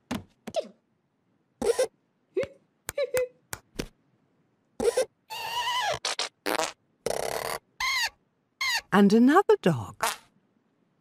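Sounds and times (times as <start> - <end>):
squeaky cartoon sound effects: 4.8 - 6.4, 7.1 - 9.0.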